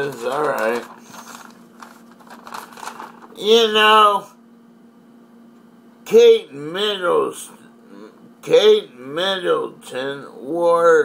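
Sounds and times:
paper rustling and crinkling: 0.0s - 3.4s.

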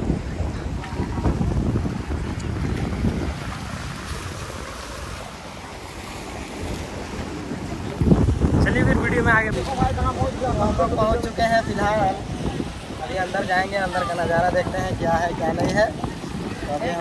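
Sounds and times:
sea waves breaking on rocks: 0.0s - 17.0s
wind buffeting microphone: 0.0s - 17.0s.

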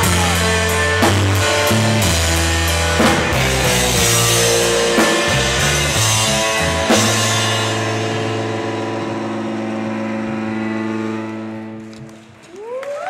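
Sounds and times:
rock band final chord ringing: 0.0s - 11.9s
audience cheering and whooping: 12.4s - 13.0s.

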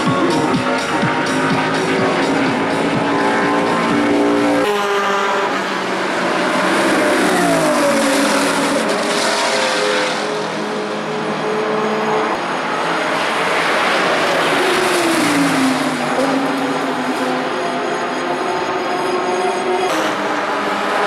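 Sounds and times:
race car engines passing: 0.0s - 21.0s.

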